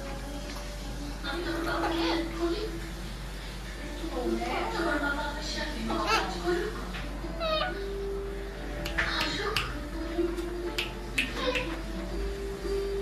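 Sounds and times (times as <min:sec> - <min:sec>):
parakeet calls and squawks: 0:01.5 - 0:02.5, 0:05.8 - 0:08.2.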